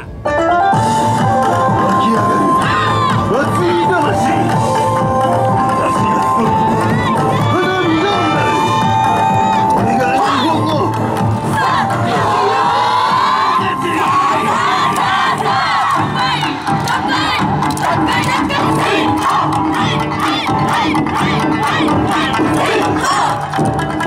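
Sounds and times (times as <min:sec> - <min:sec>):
group shouting and chanting: 0:01.9 - 0:03.8, 0:05.7 - 0:23.5.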